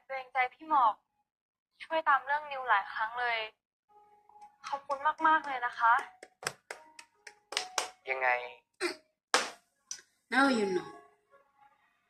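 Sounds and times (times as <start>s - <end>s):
hands clapping: 4.6s - 8.0s, 9.3s - 10.0s.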